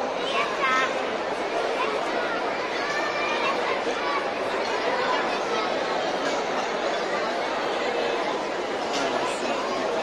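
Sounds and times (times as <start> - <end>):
crowd chatter: 0.0 - 10.0.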